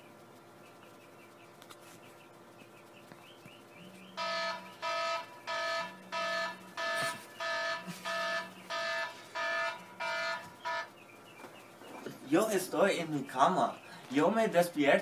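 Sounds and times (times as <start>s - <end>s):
low buzz: 2.7s - 11.4s
alarm beeping: 4.1s - 11.0s.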